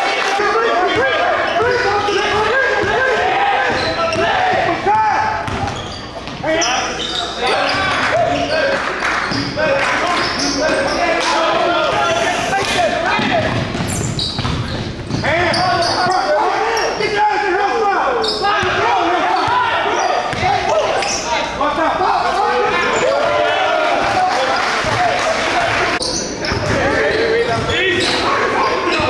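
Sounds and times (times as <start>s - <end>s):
voices calling and shouting: 0.0s - 29.0s
basketball bouncing on hardwood: 13.2s - 15.2s.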